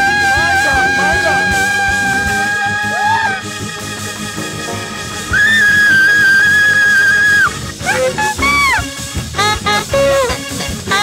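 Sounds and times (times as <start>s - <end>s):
saxophone holding high note: 0.0s - 3.7s, 4.3s - 11.0s
gospel band music: 0.0s - 11.0s.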